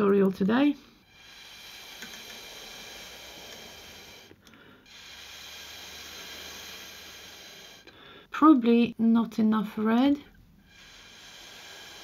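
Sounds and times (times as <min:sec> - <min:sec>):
breath blown through a straw: 0:00.9 - 0:08.2, 0:10.6 - 0:12.0.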